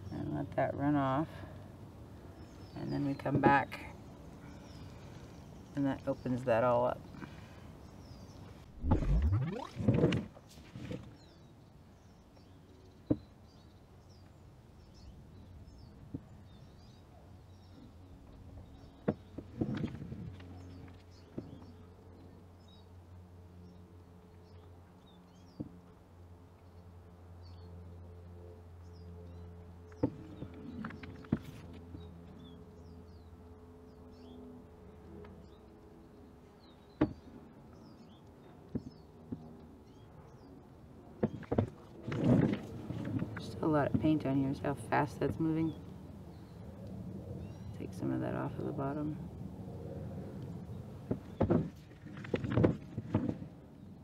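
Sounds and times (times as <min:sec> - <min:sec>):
small birds chirping: 0:00.0 - 0:10.2, 0:11.0 - 0:23.0, 0:23.6 - 0:25.8, 0:28.8 - 0:34.5, 0:35.2 - 0:42.4, 0:43.2 - 0:49.1
low steady hum: 0:00.0 - 0:54.0.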